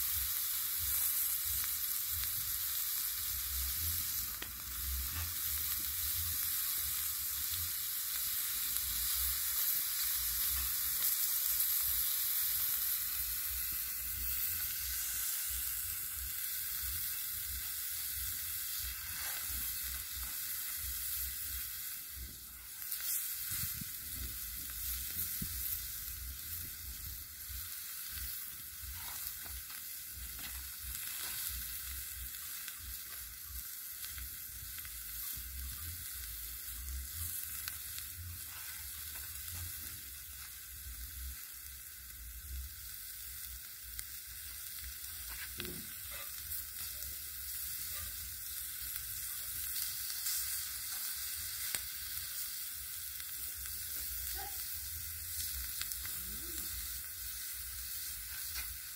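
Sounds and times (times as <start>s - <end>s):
vegetables sizzling on griddle: 0.0s - 58.9s.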